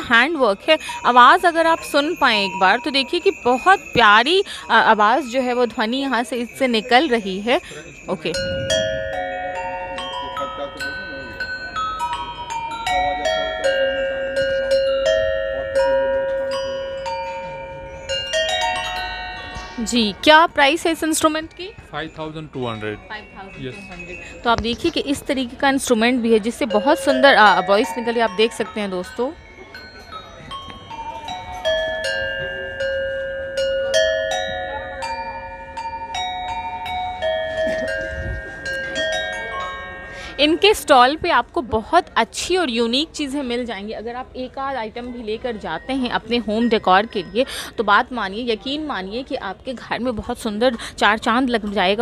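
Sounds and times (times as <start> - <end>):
copper bells played with mallet: 0.0 - 52.0.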